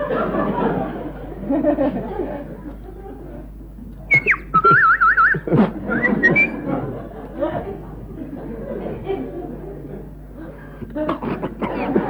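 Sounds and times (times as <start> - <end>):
murmur of voices: 0.0 - 12.0
person whistling: 4.1 - 6.6.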